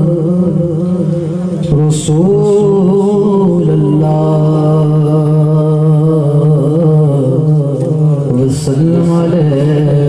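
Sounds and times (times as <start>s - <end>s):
man chanting unaccompanied: 0.0s - 10.0s.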